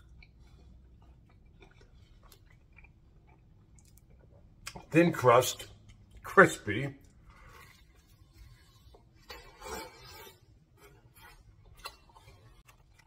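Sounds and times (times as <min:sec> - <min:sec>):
chewing crispy pizza crust: 0:00.0 - 0:13.0.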